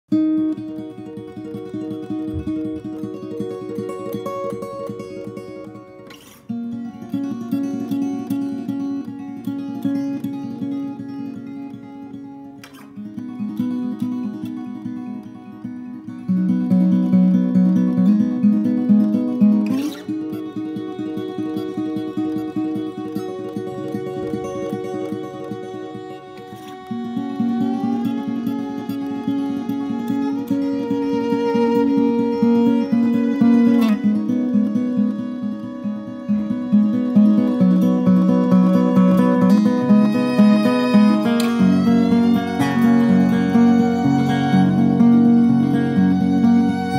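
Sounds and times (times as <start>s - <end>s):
acoustic guitar picking: 0.1s - 46.9s.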